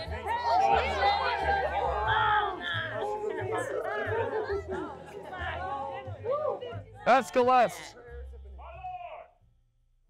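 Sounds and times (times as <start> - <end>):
people chattering: 0.0 - 7.9.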